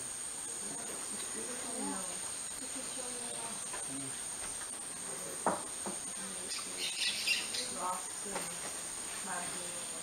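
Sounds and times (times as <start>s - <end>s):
insect chorus drone: 0.0s - 10.0s.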